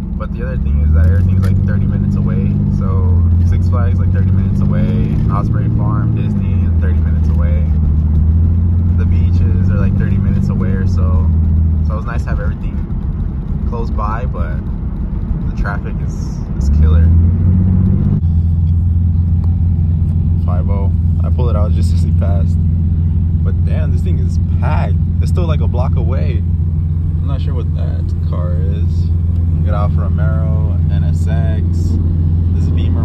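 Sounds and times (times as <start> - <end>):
car engine drone from cabin: 0.0 - 33.0.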